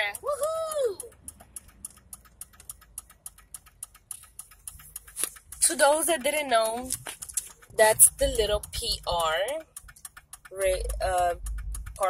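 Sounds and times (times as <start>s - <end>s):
car road rumble: 0.0s - 12.0s
light ticks: 0.0s - 12.0s.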